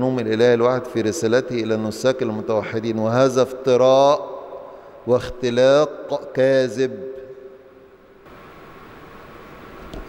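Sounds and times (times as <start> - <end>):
man's voice: 0.0 - 4.4, 5.1 - 7.2
room noise and hiss: 0.0 - 10.0.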